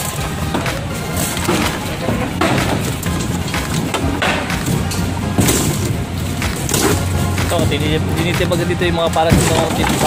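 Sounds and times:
wooden boards cracking apart: 0.0 - 7.7, 9.1 - 10.0.

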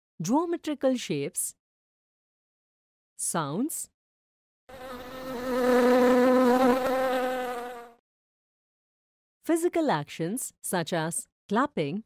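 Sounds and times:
insect buzzing: 4.7 - 8.0.

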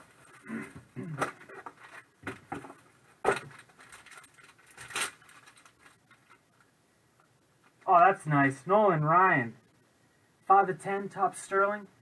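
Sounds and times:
paper and plastic wrap crinkling: 1.2 - 6.4.

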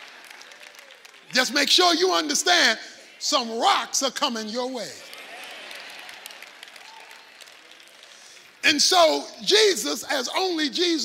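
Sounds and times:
scattered applause: 0.0 - 3.4, 4.8 - 8.8.

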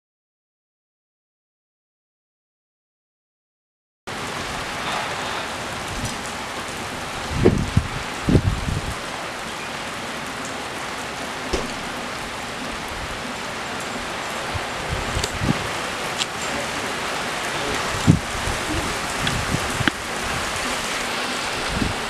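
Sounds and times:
rain falling steadily: 4.1 - 22.0.

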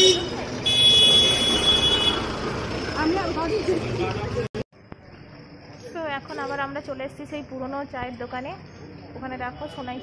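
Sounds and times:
voices of passers-by: 0.0 - 10.0
vehicle passing close by: 0.3 - 4.5.

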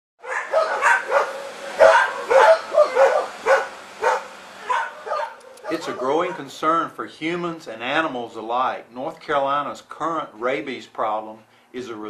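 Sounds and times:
dog barking: 0.2 - 6.5.

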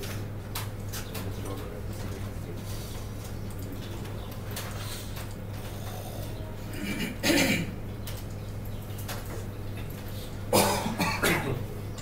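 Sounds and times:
low electrical hum: 0.0 - 12.0
person coughing: 6.8 - 7.7, 10.5 - 11.6.

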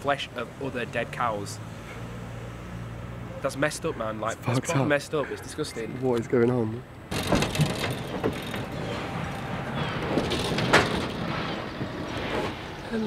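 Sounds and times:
knocks on metal trailer: 7.1 - 11.2
lorry rumbling: 7.1 - 13.0.

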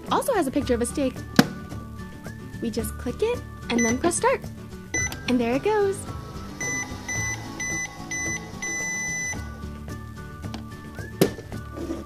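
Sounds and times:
toy microwave beeping: 3.7 - 4.2, 4.9 - 9.7.

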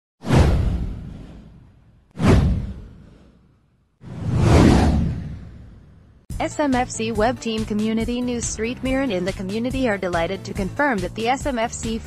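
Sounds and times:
deep boom: 0.2 - 3.1, 4.1 - 6.2
whoosh: 0.2 - 6.3.

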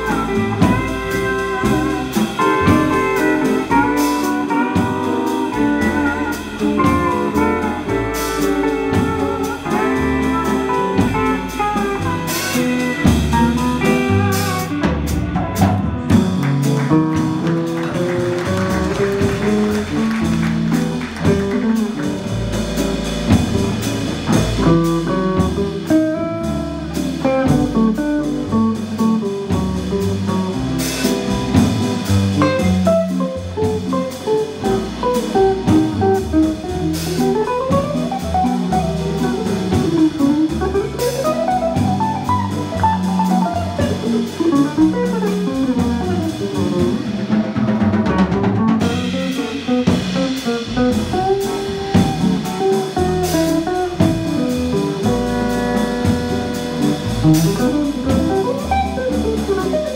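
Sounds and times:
bass and drums: 0.0 - 59.9
jazz guitar melody: 0.0 - 59.9.

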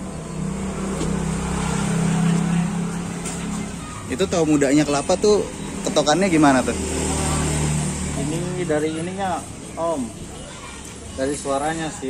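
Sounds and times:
vehicle engine passing: 0.0 - 12.0.

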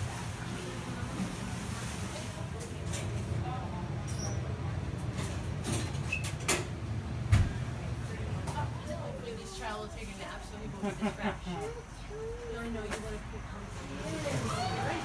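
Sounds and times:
faint distant voices: 0.0 - 15.0.

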